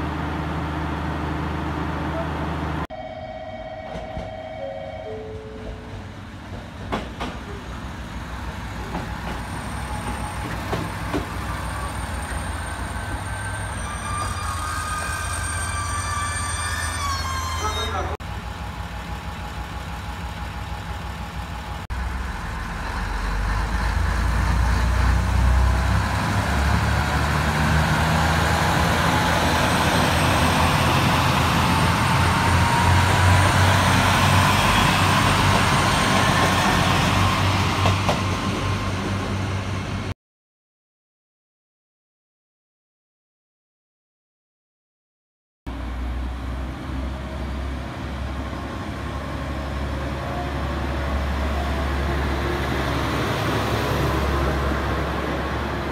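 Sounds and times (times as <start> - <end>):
diesel railcar engine rumble: 0.0 - 40.1, 45.7 - 55.9.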